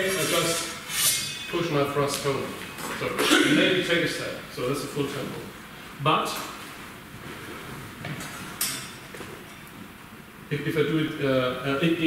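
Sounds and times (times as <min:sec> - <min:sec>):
metallic scrape of swords: 0:00.0 - 0:01.6.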